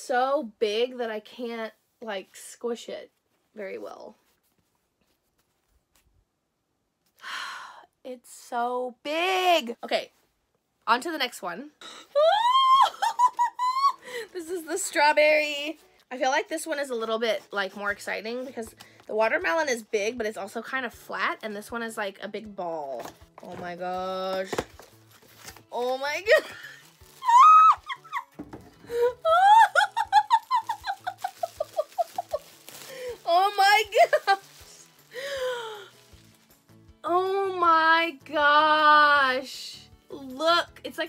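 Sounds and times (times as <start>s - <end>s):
woman squealing excitedly: 12.1s - 14.2s, 26.4s - 32.5s
woman giggling: 12.6s - 14.2s, 29.3s - 32.4s.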